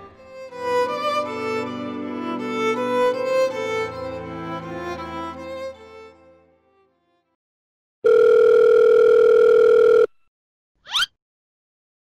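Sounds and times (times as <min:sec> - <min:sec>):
telephone ringing tone: 0:08.0 - 0:10.2.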